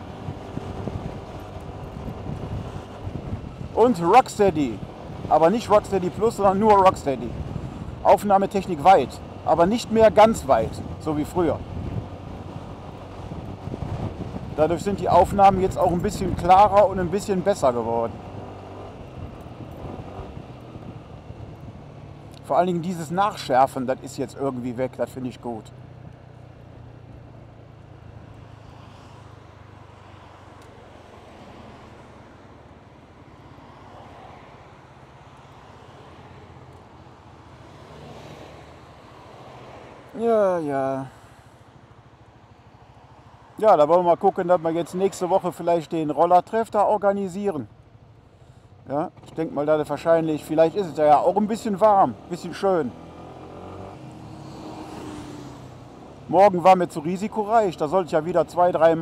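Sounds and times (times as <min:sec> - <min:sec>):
scooter engine hum: 0:00.0 - 0:08.1, 0:08.8 - 0:22.4
road and wind noise: 0:00.0 - 0:59.0.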